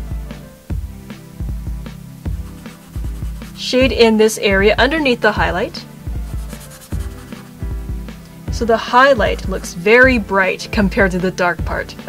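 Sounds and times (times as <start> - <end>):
soft background music: 0.0 - 12.0
pencil scribbling on paper: 2.3 - 3.7, 6.3 - 7.6.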